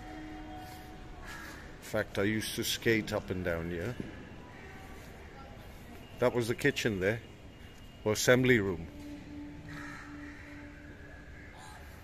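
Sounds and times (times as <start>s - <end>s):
steady low hum: 0.0s - 12.0s
crows cawing: 1.2s - 1.9s, 9.5s - 12.0s.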